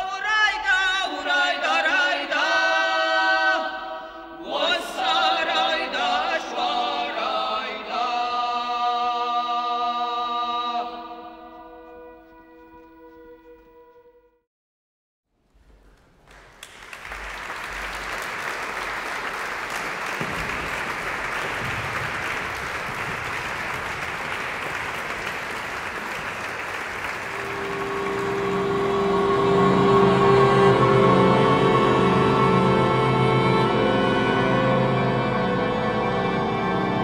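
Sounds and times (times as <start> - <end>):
women's choir singing: 0.2 - 11.4, 27.5 - 35.0
audience applauding: 15.8 - 29.8
saxophones playing chords: 26.6 - 37.0.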